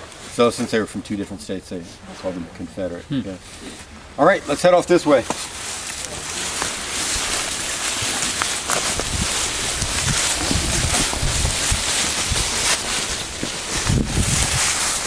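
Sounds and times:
wind: 0.0 - 15.0
footsteps crunching dry leaves: 4.5 - 15.0
microphone handling noise: 8.2 - 15.0.

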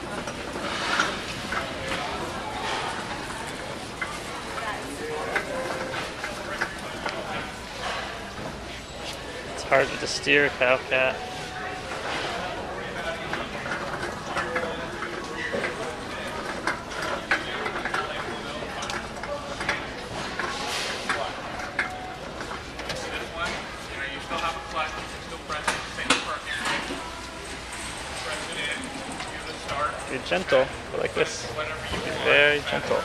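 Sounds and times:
steady background noise: 0.0 - 33.0.

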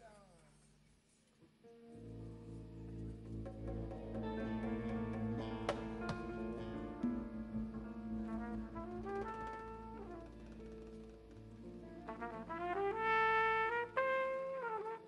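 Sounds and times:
quiet jazz band backing: 1.2 - 15.0
jazz trumpet solo: 6.0 - 11.0, 11.8 - 15.0.

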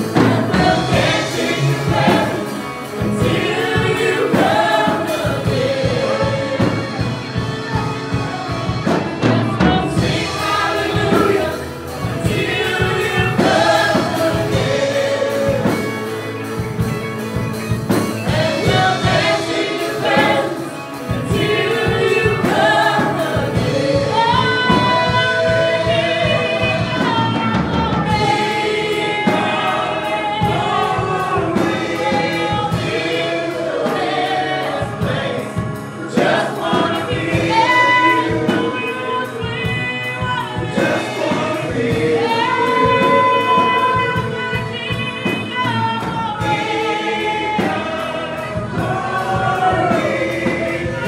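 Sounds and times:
band accompaniment: 0.0 - 51.0
gospel choir singing: 0.0 - 51.0.

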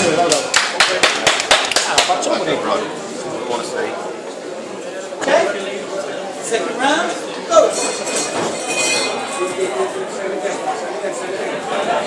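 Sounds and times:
people clapping: 0.1 - 2.4.

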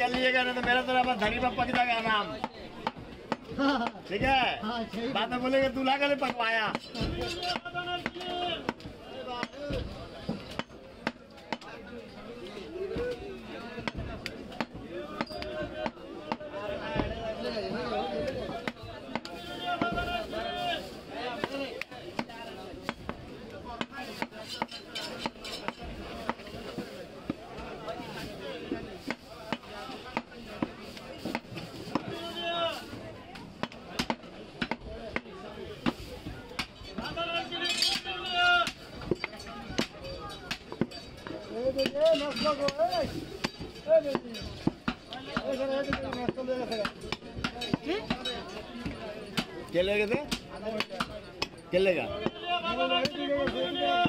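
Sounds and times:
voices chattering: 0.0 - 54.0.

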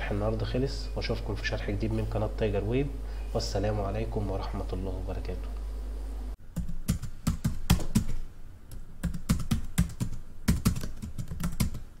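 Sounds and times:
typing on keyboard: 6.6 - 11.9.

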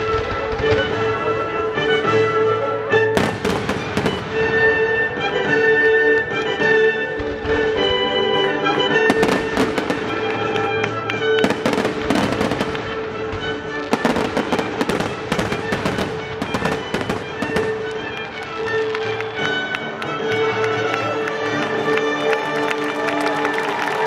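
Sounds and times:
fireworks bangs and crackles: 0.0 - 22.4
baroque orchestral music: 0.0 - 24.0.

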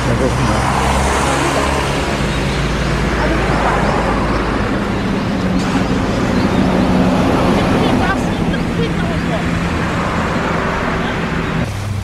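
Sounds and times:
bus engine hum: 0.0 - 12.0
road traffic passing: 0.0 - 12.0.

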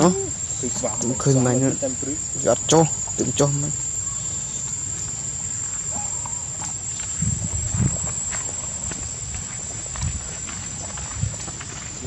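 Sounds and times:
high-pitched insect drone: 0.0 - 12.0
dull low thumps: 7.0 - 10.3.

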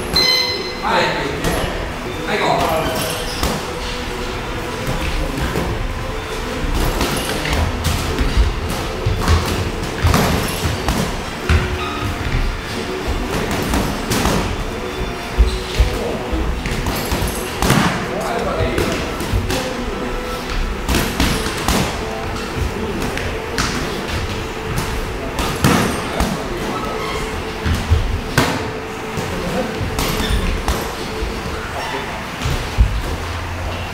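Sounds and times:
background music: 0.0 - 33.9.

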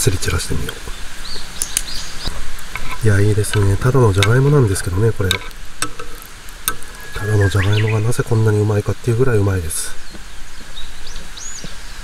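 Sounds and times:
bird chirps: 0.7 - 2.4, 6.0 - 8.8, 9.8 - 12.0
food sizzling in oil: 1.2 - 8.0.

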